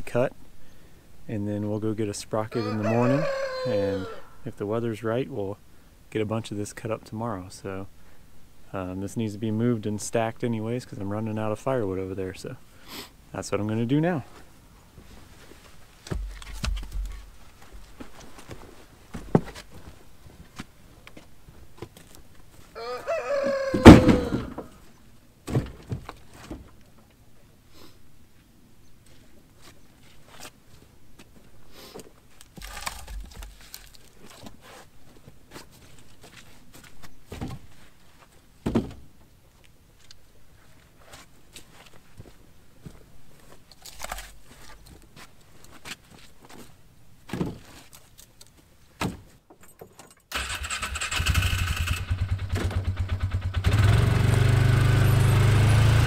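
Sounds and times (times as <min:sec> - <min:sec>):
firewood knocking into vehicle bed: 0:16.1 - 0:17.2, 0:23.8 - 0:24.6
utility vehicle engine running: 0:52.1 - 0:56.0.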